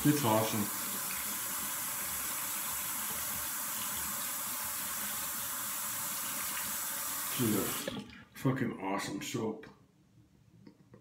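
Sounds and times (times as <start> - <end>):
water running from sink tap: 0.0 - 8.1.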